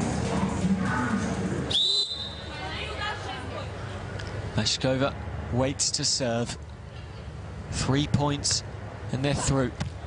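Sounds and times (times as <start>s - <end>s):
crowd chatter: 0.0s - 4.4s
referee's whistle blast: 1.7s - 2.5s.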